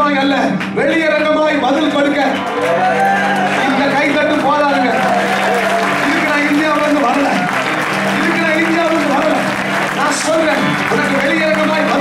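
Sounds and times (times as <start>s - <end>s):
people clapping: 0.5s - 12.0s.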